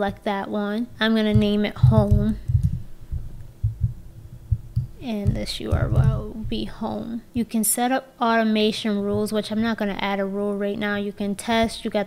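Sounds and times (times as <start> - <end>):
faint steady hum: 0.0 - 12.0
irregular low thuds: 0.9 - 7.4, 8.9 - 10.4.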